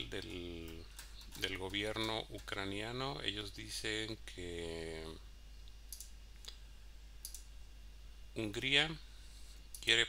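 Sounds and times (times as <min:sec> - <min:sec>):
computer mouse clicks: 0:05.9 - 0:06.6, 0:07.2 - 0:07.5.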